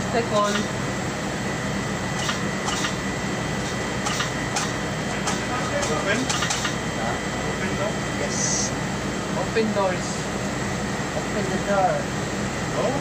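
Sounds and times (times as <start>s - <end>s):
machine whine: 0.0s - 13.0s.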